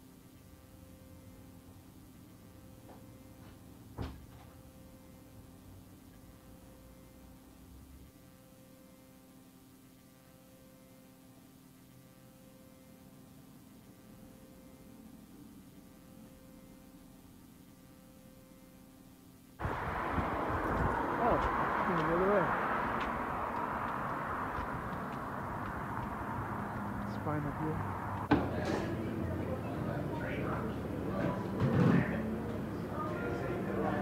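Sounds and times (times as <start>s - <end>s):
faint steady hum: 0.0s - 34.0s
street noise: 19.5s - 34.0s
wind rumbling on microphone: 19.6s - 28.3s.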